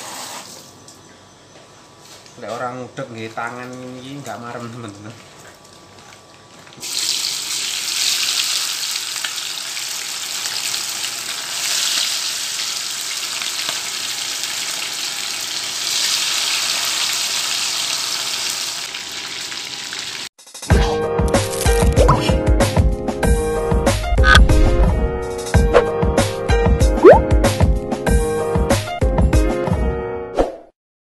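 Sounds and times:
chicken sizzling in hot oil: 6.8s - 20.3s.

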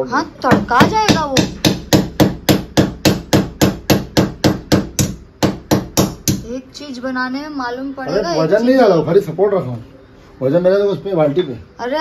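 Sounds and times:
hammer striking wall: 0.5s - 6.5s.

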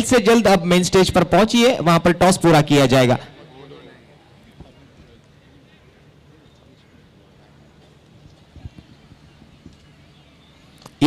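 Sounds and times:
open-air ground ambience: 0.0s - 11.0s.

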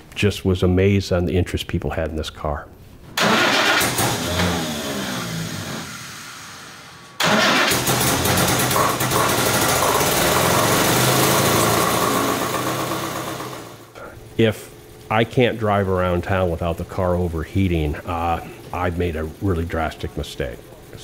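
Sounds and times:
car engine running: 3.2s - 21.0s.

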